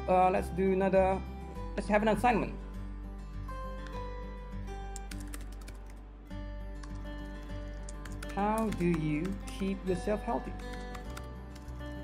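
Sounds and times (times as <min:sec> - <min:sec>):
soft background music: 0:00.0 - 0:12.0
keyboard typing clicks: 0:05.0 - 0:06.0, 0:07.7 - 0:09.6, 0:10.6 - 0:11.8.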